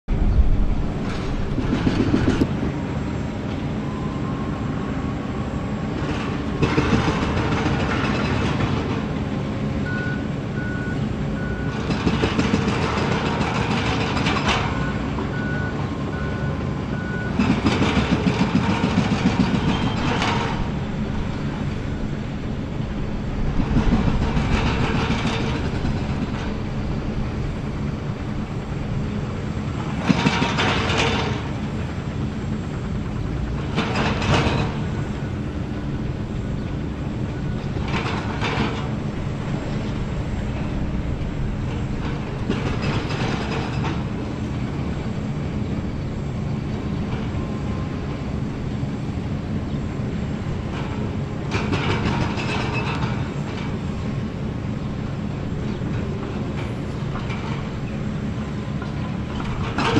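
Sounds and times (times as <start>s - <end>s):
diesel excavator engines running: 0.1s - 59.9s
reversing alarm beeping: 3.8s - 5.4s, 9.8s - 11.8s, 14.6s - 17.6s.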